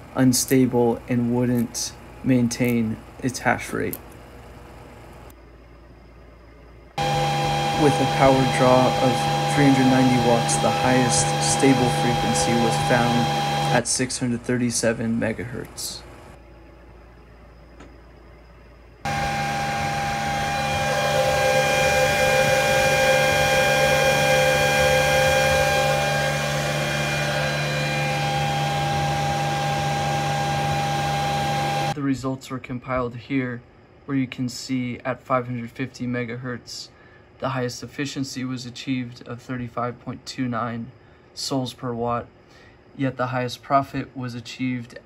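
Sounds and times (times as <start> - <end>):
cooling fans rushing and whining: 0.0 - 5.4, 6.5 - 39.9
steady low hum: 0.0 - 45.0.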